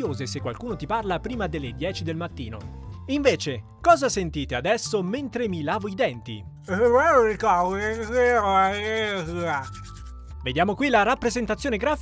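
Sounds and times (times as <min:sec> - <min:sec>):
person holding garbled vowel: 0:06.7 - 0:09.6
toothbrush scrubbing: 0:06.7 - 0:10.3.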